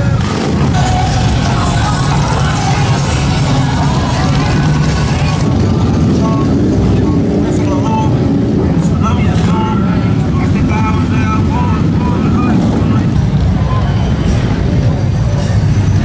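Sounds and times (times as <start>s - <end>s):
crowd voices: 0.0s - 16.0s
motorcycle engines rumbling: 0.0s - 16.0s.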